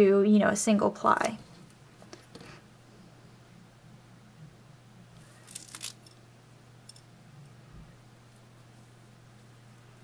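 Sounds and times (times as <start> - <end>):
steady low hum: 0.9 - 10.0
yarn rustles on latch hook: 5.2 - 6.2.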